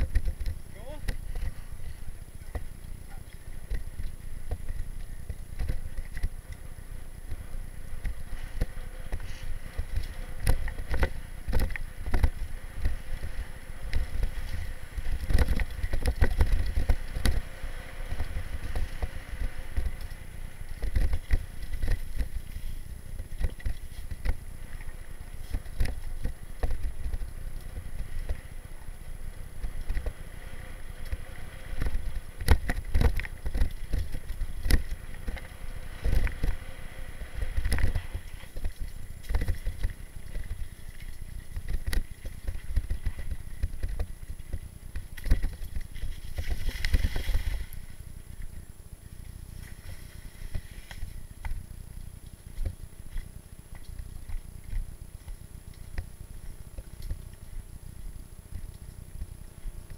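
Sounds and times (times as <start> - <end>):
bike clicks and rattles: 0.0 - 48.6
bike rolling over dirt: 0.0 - 59.9.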